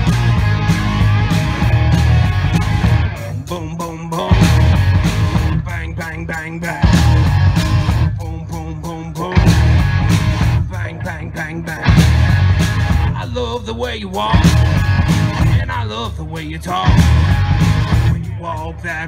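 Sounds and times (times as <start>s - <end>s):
electric guitar lick with bent notes: 0.0s - 3.5s, 4.2s - 5.6s, 6.8s - 8.1s, 9.3s - 10.7s, 11.6s - 13.2s
rock band hits with bass and drums: 0.0s - 19.0s.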